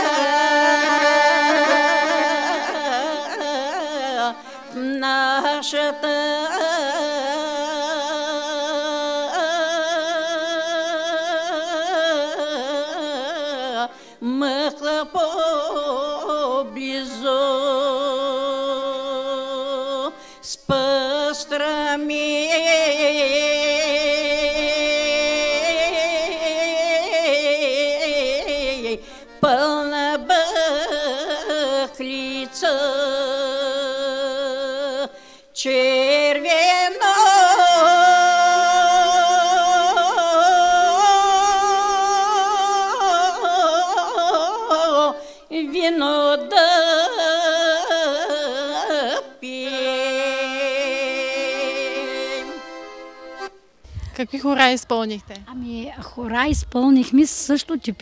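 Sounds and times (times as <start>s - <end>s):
women's choir singing: 0.0s - 4.3s, 35.8s - 53.5s
women singing unaccompanied: 0.0s - 53.0s.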